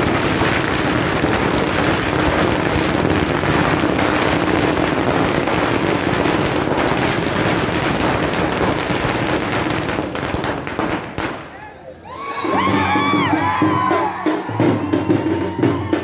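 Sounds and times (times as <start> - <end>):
firecrackers crackling: 0.0 - 11.8.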